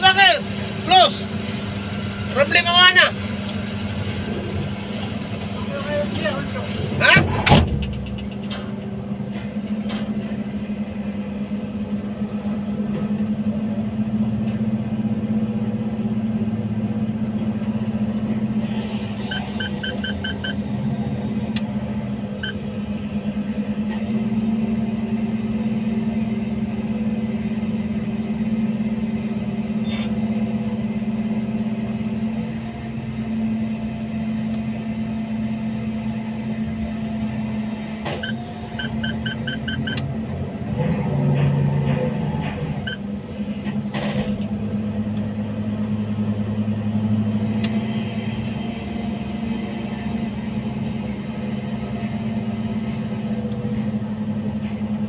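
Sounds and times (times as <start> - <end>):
crane engine humming: 0.0 - 55.0.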